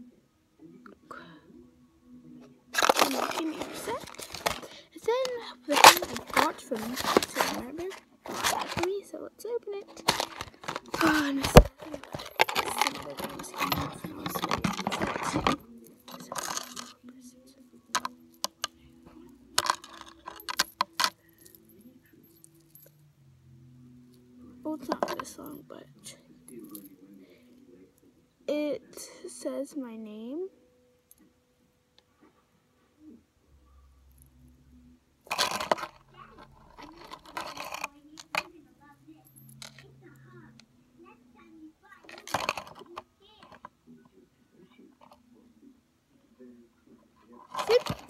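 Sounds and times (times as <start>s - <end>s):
chain links clinking: 2.8s - 9.0s, 9.8s - 17.0s, 18.0s - 23.0s, 24.7s - 25.6s, 26.5s - 27.0s, 35.3s - 38.5s, 39.2s - 40.1s, 42.0s - 43.0s, 47.5s - 48.0s
metal chain jingling: 2.8s - 9.0s, 9.8s - 17.0s, 19.6s - 22.9s
handling rustle: 2.8s - 9.2s, 9.8s - 17.0s, 17.9s - 22.8s, 24.7s - 25.6s, 35.3s - 38.5s, 42.0s - 43.7s, 47.3s - 48.0s.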